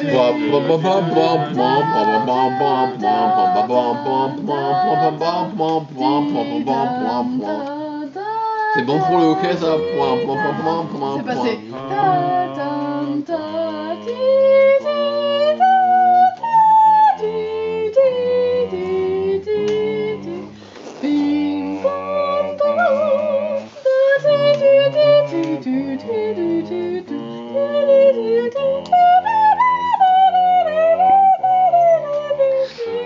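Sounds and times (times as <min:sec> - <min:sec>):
people singing in harmony: 0:00.0 - 0:33.0.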